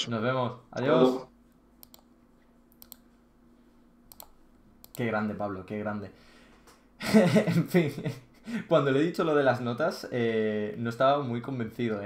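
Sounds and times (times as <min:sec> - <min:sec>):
faint steady hum: 0:00.0 - 0:12.0
computer control clicks: 0:01.8 - 0:02.1, 0:02.8 - 0:03.0, 0:04.1 - 0:05.0.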